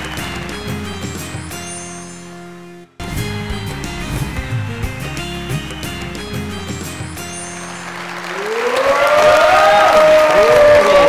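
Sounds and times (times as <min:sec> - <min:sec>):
studio audience applause: 0:00.0 - 0:01.3, 0:05.0 - 0:11.0
show jingle music: 0:00.0 - 0:08.4.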